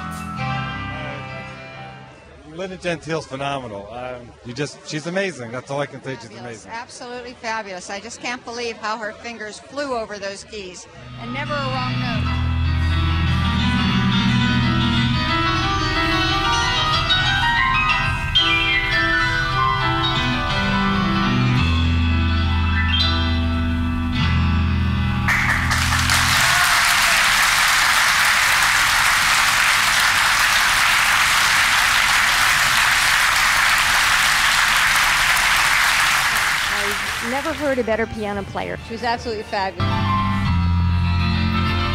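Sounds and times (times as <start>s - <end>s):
grand piano playing fast runs: 12.2s - 38.7s
audience applause: 25.3s - 37.9s.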